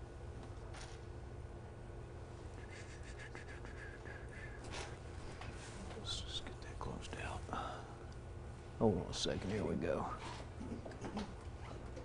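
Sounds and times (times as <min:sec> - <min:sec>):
steady low hum: 0:00.0 - 0:12.0
man speaking quietly: 0:05.8 - 0:07.8, 0:08.8 - 0:10.2.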